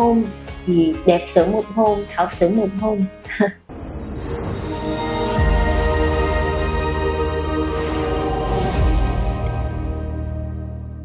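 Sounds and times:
bright high chime: 3.8s - 11.0s
closing jingle music: 4.2s - 11.0s.

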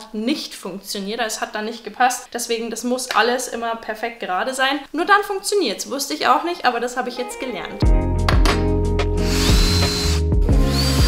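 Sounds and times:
background music with steady beat: 7.2s - 11.0s
cordless drill driving screws: 9.2s - 11.0s.

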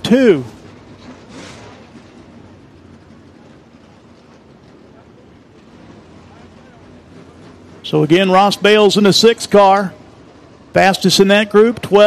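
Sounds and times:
race car engines running low: 0.0s - 12.0s
track noise hum: 0.0s - 12.0s.

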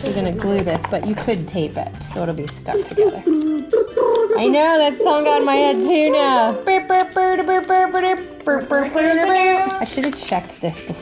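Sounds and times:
person singing: 5.3s - 9.8s.

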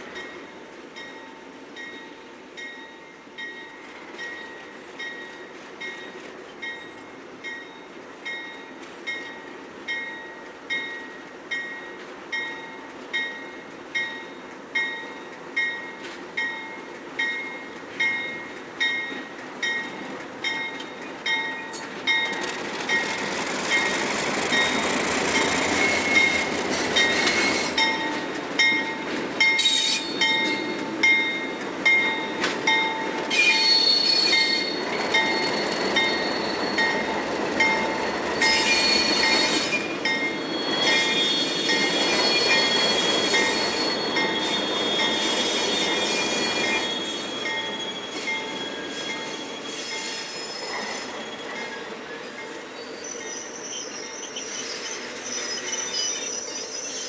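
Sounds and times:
wheels clicking over rail joints: 17.2s - 40.4s
train wheels squealing: 21.6s - 57.0s.

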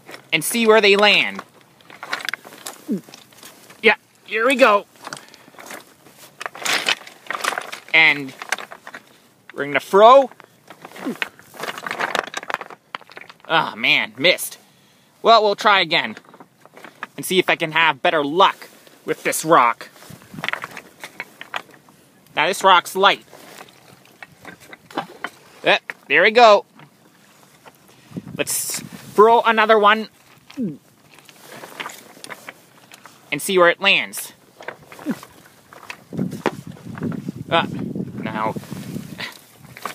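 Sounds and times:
close rustling: 0.0s - 13.5s, 15.9s - 17.3s, 18.2s - 39.9s.

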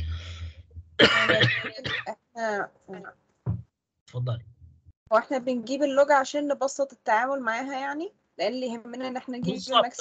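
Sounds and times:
person coughing: 1.0s - 2.1s.

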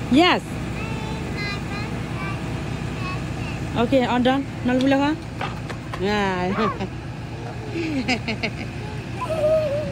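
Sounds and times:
bus engine idling: 0.0s - 9.9s.

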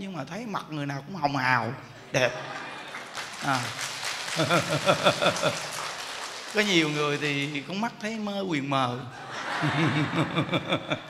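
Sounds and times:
man laughing: 2.1s - 3.8s, 4.4s - 5.7s, 9.2s - 11.0s.

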